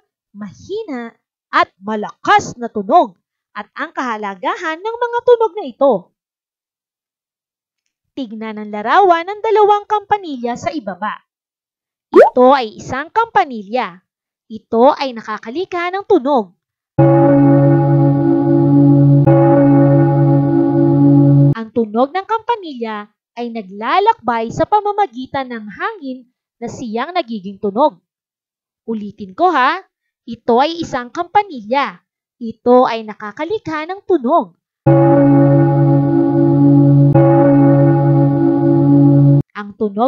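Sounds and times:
deep bell ringing: 0:17.0 - 0:21.6, 0:34.9 - 0:39.4.

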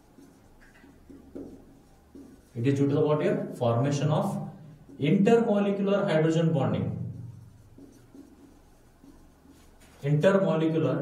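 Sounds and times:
marker pen scratching on whiteboard: 0:00.0 - 0:11.0.

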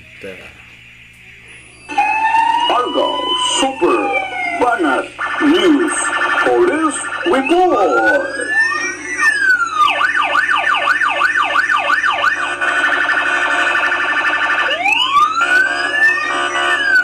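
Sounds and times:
police siren wailing and yelping: 0:01.7 - 0:17.0.

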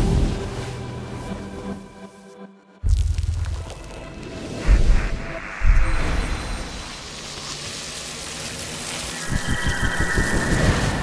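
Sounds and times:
rain-like hiss: 0:03.1 - 0:11.0.

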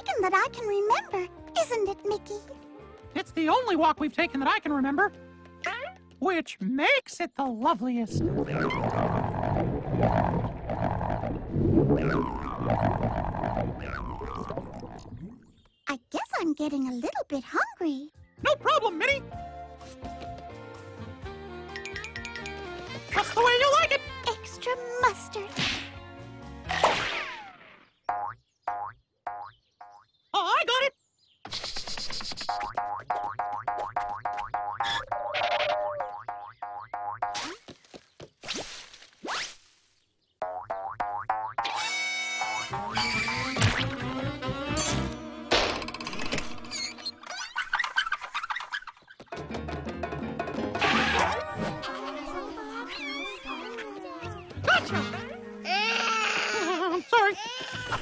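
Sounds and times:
cartoon music with descending slide: 0:41.6 - 0:45.2, 0:50.6 - 0:55.9
cartoon babies cooing and whimpering: 0:51.0 - 0:58.0.

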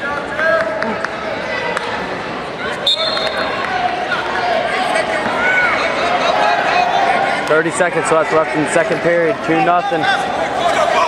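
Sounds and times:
referee's whistle blast: 0:02.8 - 0:03.5
people shouting: 0:09.5 - 0:11.0.

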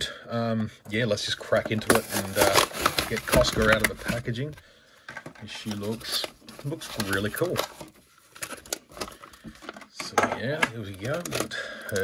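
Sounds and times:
plastic packaging crinkling: 0:01.4 - 0:10.0.

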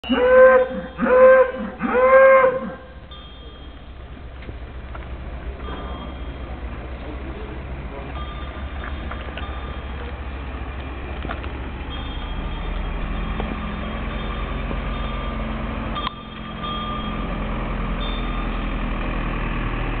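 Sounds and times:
cowbells ringing: 0:00.0 - 0:19.2
vehicle engine hum: 0:00.0 - 0:20.0.

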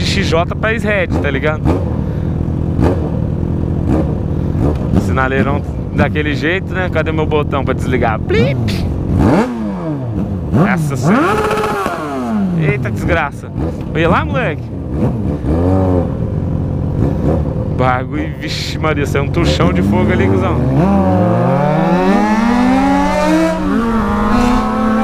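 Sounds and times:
motorcycle engine idling: 0:00.0 - 0:09.1
motorcycle engine revving: 0:00.0 - 0:25.0
motorcycles idling: 0:00.0 - 0:25.0.

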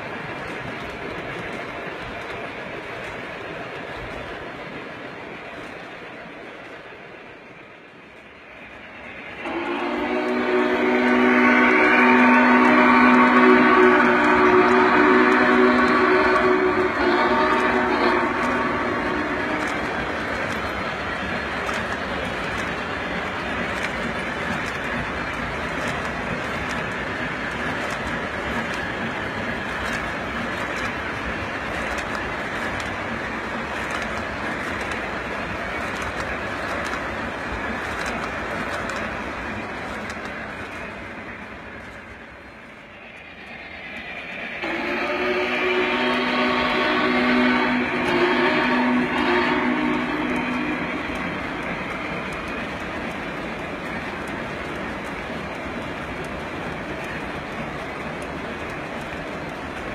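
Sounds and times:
model train running on track: 0:00.0 - 0:59.9
locomotive whistle blast: 0:09.4 - 0:19.8, 0:44.6 - 0:51.1.

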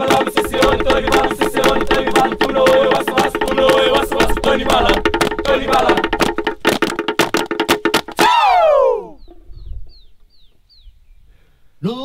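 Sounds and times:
chanting voices: 0:00.0 - 0:06.5
rhythmic percussive strikes: 0:00.0 - 0:08.4
long falling vocal cry: 0:08.2 - 0:09.2
faint bird chirps: 0:09.0 - 0:11.6.

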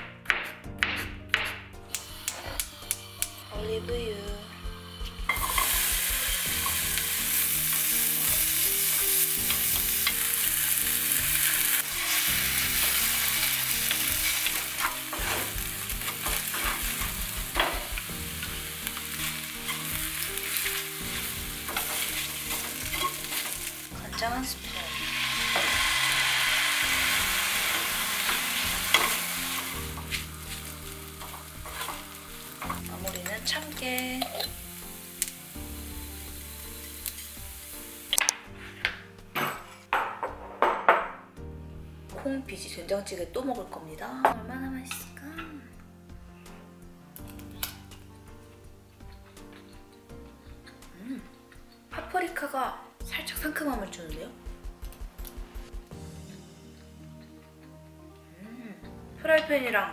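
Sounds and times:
wooden spatula scraping a pan: 0:04.0 - 0:34.7, 0:38.5 - 0:39.9
food sizzling in a frying pan: 0:04.4 - 0:41.2, 0:42.2 - 0:57.7.

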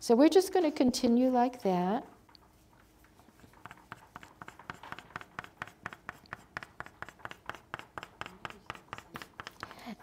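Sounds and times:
pastel stick scratching on paper: 0:02.3 - 0:09.7.

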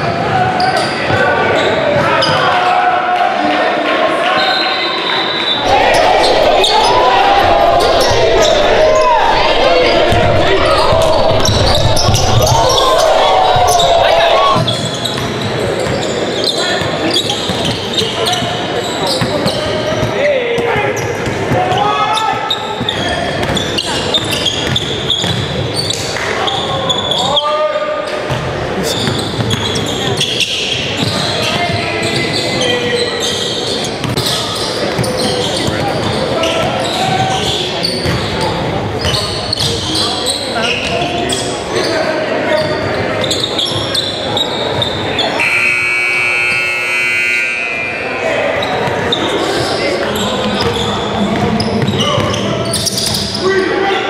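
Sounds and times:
voices echoing in gym: 0:00.0 - 0:54.0.

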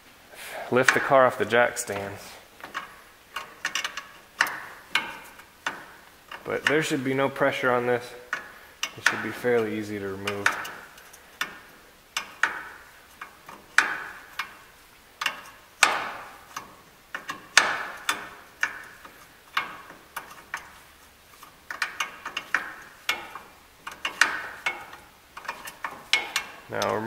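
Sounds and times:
ratchet wrench clicking: 0:02.7 - 0:06.9, 0:21.7 - 0:27.0.

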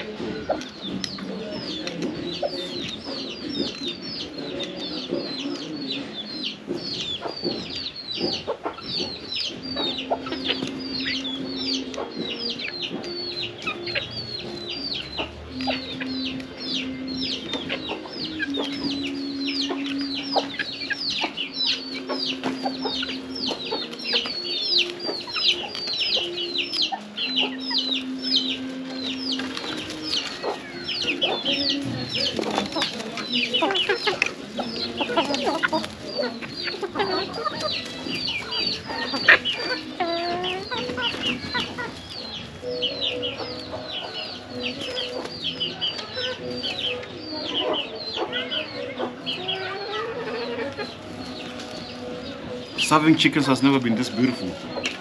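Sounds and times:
chicks peeping: 0:00.0 - 0:55.0
hens clucking: 0:00.0 - 0:55.0
drawn-out lower calls: 0:08.0 - 0:52.8.

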